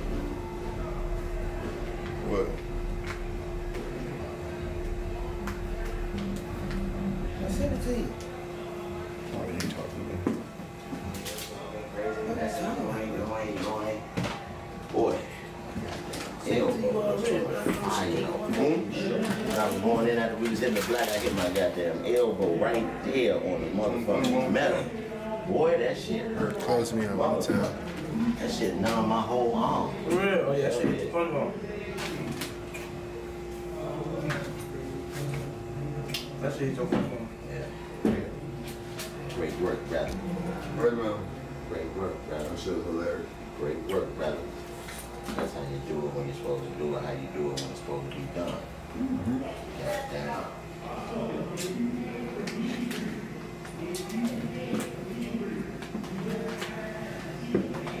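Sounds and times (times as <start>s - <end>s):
indistinct background voices: 0.0s - 58.0s
steady hum: 0.0s - 58.0s.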